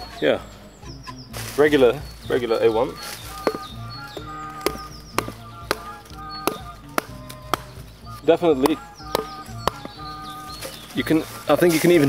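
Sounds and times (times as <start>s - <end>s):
knife chopping into wooden stick: 3.4s - 7.8s, 8.6s - 10.0s.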